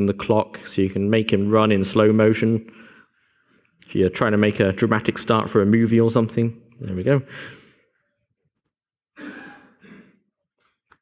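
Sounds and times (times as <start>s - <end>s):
man sighing: 9.2s - 10.2s.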